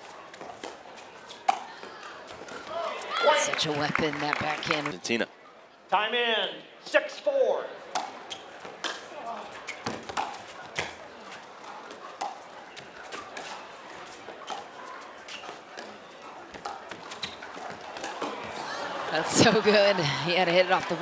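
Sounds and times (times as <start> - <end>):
murmur of crowd: 0.0 - 21.0.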